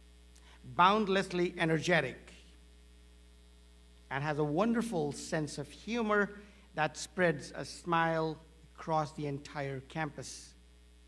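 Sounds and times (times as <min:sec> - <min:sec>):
low electrical hum: 0:00.0 - 0:11.0
man speaking: 0:00.6 - 0:02.5, 0:04.1 - 0:10.6.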